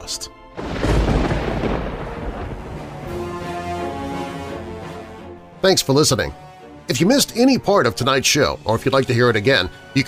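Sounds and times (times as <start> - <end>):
thunder rumble: 0.6 - 4.4.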